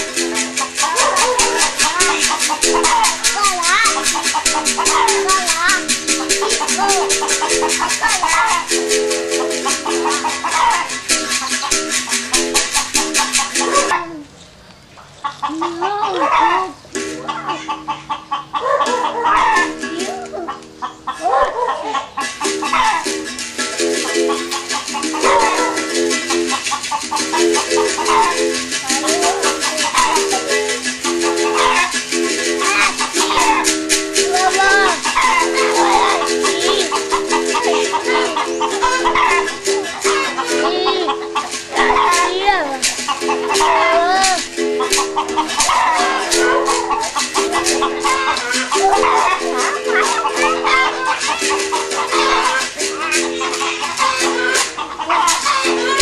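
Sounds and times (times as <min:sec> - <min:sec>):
shaker rattling: 0:00.0 - 0:14.1, 0:22.2 - 0:56.0
berimbau notes: 0:00.0 - 0:14.4, 0:15.4 - 0:56.0.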